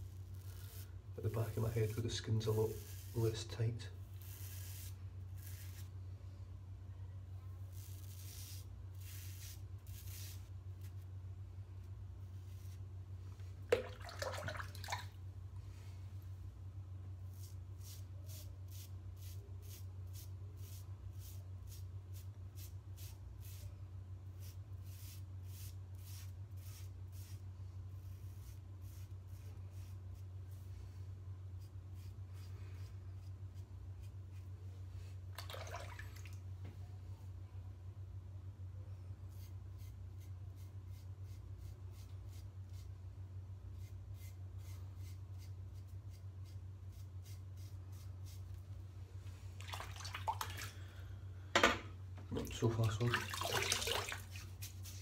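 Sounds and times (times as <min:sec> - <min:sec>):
steady low hum: 0:00.0 - 0:55.0
razor scraping through lather: 0:00.2 - 0:05.9, 0:07.6 - 0:11.0, 0:43.8 - 0:48.5.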